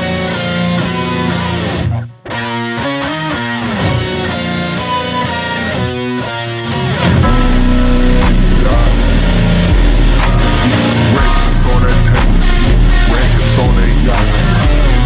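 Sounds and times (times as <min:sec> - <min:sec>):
plucked guitar melody: 0:00.0 - 0:15.0
heavy bass beat with high ticks: 0:07.2 - 0:15.0.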